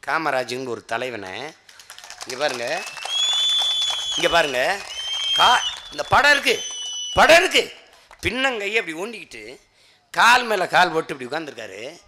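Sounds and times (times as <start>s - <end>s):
man speaking over loudspeaker: 4.2s - 4.8s, 5.4s - 6.6s, 10.2s - 12.0s.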